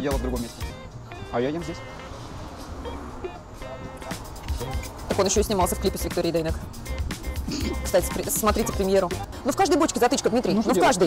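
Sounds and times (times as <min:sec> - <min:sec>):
pulsing bass beat: 0:03.2 - 0:09.8.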